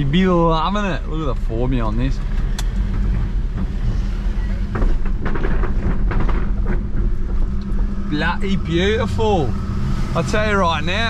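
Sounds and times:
car engine and road rumble: 0.0s - 11.0s
knocks and rattles: 2.2s - 8.6s.

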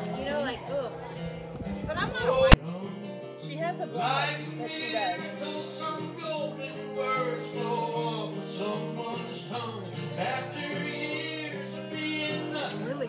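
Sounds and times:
acoustic guitar: 0.0s - 13.0s
person singing: 2.3s - 13.0s.

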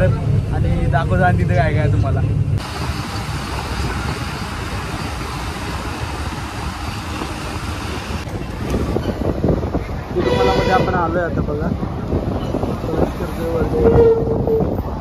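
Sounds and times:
bus road and wind noise: 0.0s - 15.0s
vehicle horn toot: 10.2s - 11.1s.

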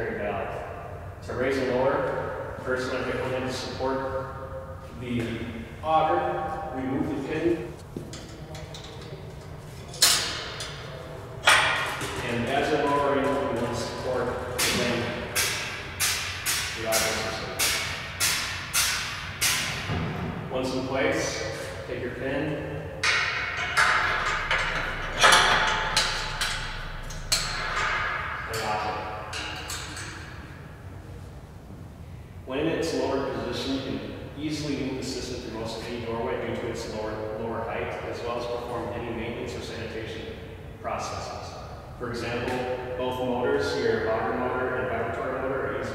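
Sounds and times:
metal pin clinking and knocking: 23.0s - 30.4s.

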